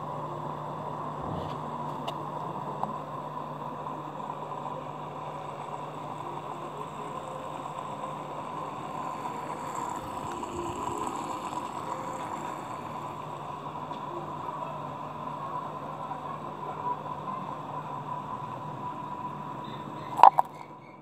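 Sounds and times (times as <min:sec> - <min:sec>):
aquarium pump humming and rushing: 0:00.0 - 0:21.0.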